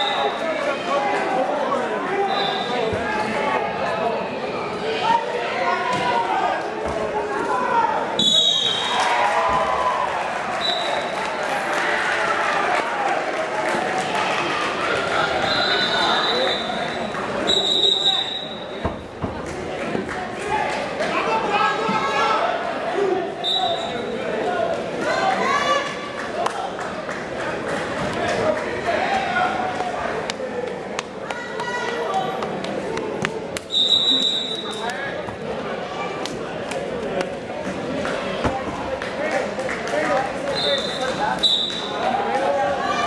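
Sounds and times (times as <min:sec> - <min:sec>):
voices echoing in a gym: 0:00.0 - 0:43.0.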